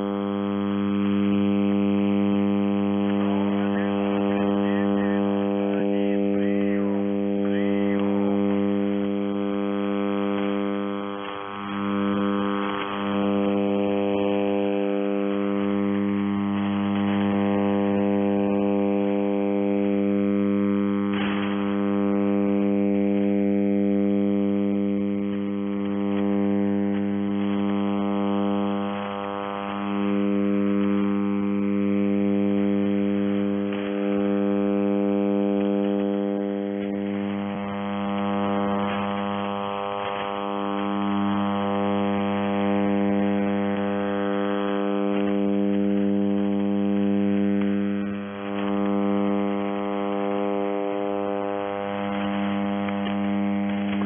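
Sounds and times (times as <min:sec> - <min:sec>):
buzzing radio interference hum: 0:00.0 - 0:54.0.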